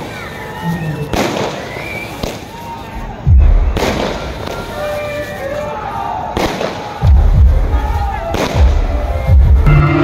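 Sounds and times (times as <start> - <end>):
fireworks sharp bangs: 0.0 - 9.6
fireworks deep booms: 3.0 - 4.8, 6.3 - 9.7.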